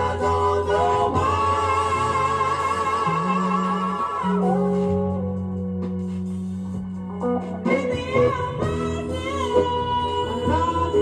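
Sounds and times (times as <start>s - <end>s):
soul record with voices singing: 0.0s - 11.0s.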